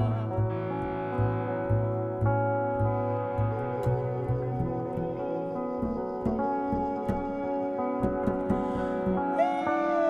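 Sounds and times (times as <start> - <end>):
plucked double bass: 0.0 - 5.0
electric guitar chords: 0.0 - 10.0.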